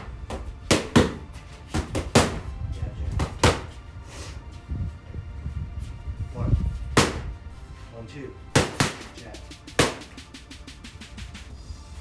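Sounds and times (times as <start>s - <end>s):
boxing gloves smacking pads: 0.0s - 2.5s, 3.1s - 3.8s, 7.0s - 7.2s, 8.5s - 9.2s, 9.8s - 10.2s.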